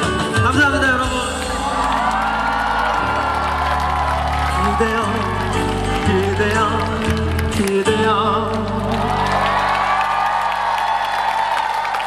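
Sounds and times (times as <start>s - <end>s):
audience cheering and applauding: 0.8s - 12.0s.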